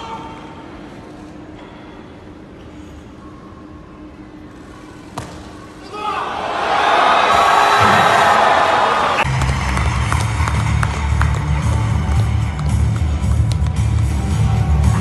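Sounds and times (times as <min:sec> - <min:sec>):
crowd cheering: 0:06.0 - 0:12.8.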